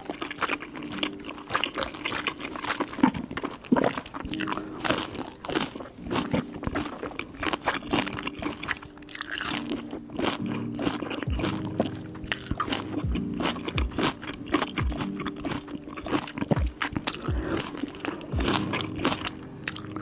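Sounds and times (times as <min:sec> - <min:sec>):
kimchi being bitten and chewed: 0:00.0 - 0:20.0.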